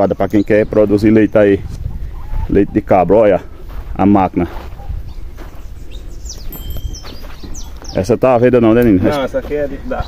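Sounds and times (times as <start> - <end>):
small birds chirping: 0.0 - 10.0
bird whistle: 5.9 - 8.0.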